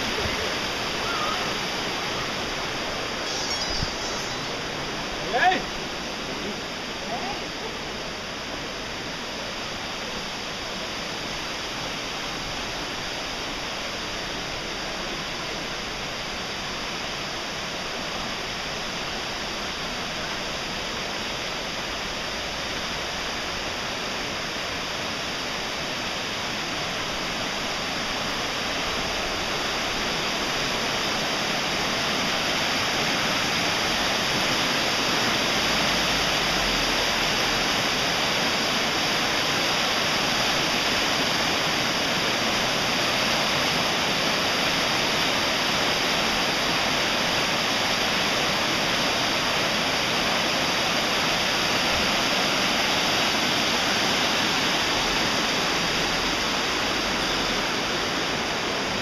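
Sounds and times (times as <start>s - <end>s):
floodwater rushing: 0.0s - 59.0s.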